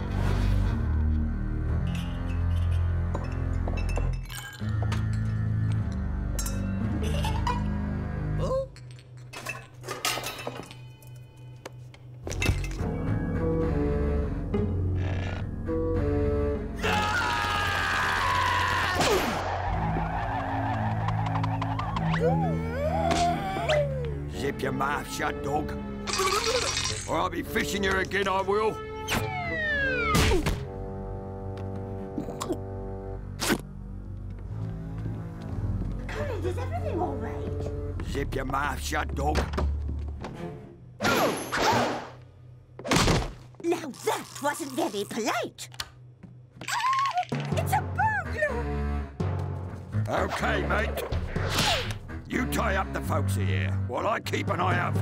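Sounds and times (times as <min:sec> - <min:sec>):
cartoon laugh: 0:07.0 - 0:07.7.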